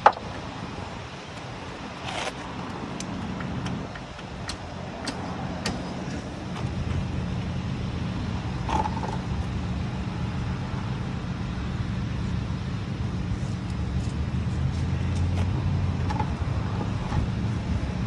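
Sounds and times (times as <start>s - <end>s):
vehicle engine idling: 0.0s - 18.0s.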